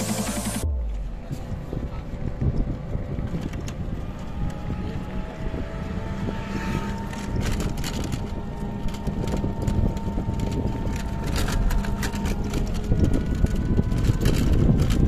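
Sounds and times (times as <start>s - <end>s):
engine hum: 0.0s - 15.0s
road rumble: 0.0s - 15.0s
wind buffeting microphone: 0.6s - 15.0s.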